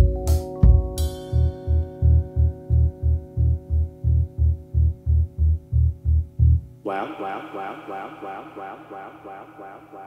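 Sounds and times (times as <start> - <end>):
repeated low bass note: 0.0 - 6.9
held keyboard chord: 0.0 - 7.0.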